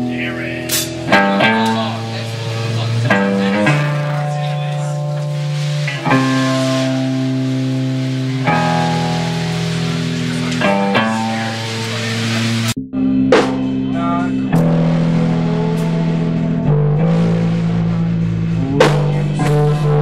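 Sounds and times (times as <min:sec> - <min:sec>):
electric guitars rock chords: 0:00.0 - 0:20.0.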